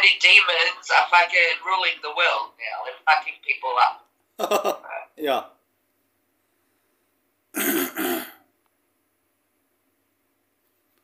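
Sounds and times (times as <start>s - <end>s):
man clearing his throat: 7.5s - 8.5s.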